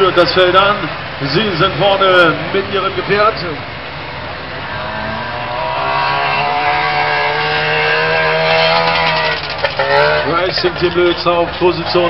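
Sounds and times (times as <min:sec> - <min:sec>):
two-stroke engines racing at high revs: 0:00.0 - 0:12.0.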